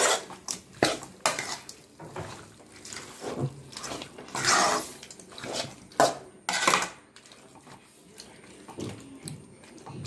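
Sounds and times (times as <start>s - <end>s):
metal spoon scraping pan: 0.0s - 1.8s, 2.9s - 7.0s.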